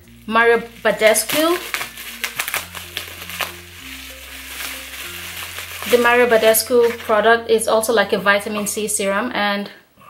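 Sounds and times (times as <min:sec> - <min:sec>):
bubble wrap rustling: 0:00.0 - 0:08.9
background music with low notes: 0:00.0 - 0:10.0.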